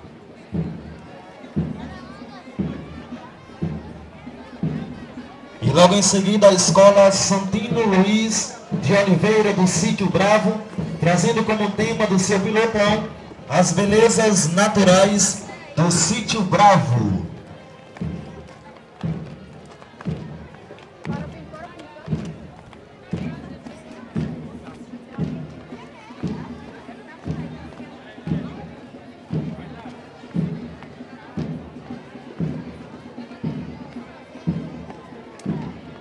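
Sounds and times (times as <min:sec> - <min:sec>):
faint crowd chatter: 0:00.0 - 0:36.0
bass drum march beat: 0:00.5 - 0:01.0, 0:01.6 - 0:36.0.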